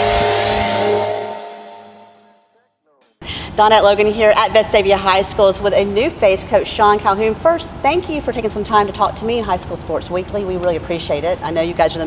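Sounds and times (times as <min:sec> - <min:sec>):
whooshing sweep: 0:00.0 - 0:02.4
held chord: 0:00.0 - 0:02.7.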